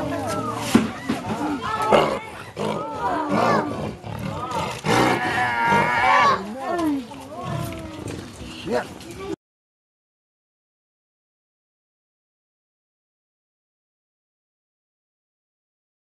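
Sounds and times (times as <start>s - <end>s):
big cat cubs growling: 1.4s - 8.2s.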